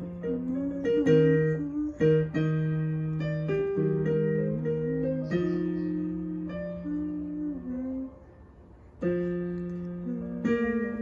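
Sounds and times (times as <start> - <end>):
digital piano played slowly: 0.0 - 11.0.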